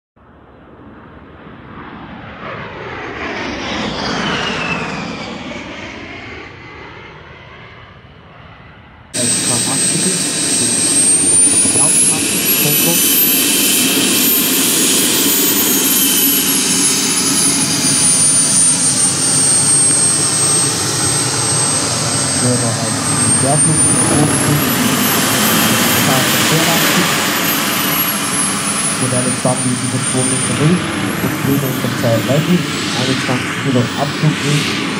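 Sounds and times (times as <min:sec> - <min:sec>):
turbine engine high whine: 0:00.2 - 0:34.9
jet whoosh: 0:09.2 - 0:34.9.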